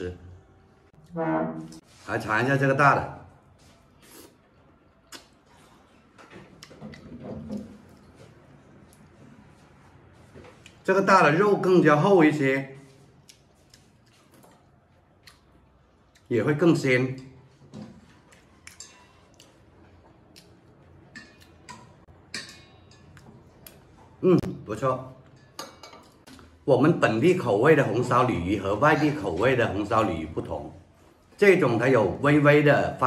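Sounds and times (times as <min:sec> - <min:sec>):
person chewing with mouth clicks: 0:04.0 - 0:05.9, 0:13.2 - 0:16.3.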